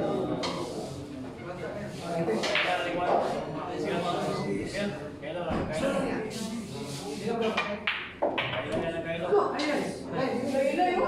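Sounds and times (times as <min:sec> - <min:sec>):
low chatter of voices: 0:00.0 - 0:11.0.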